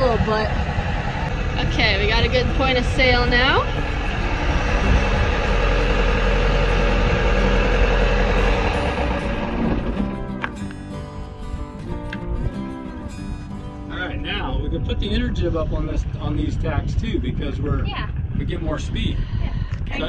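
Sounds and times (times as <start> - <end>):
boat engine running: 0.0 - 13.6
steady shifting tones: 0.0 - 19.7.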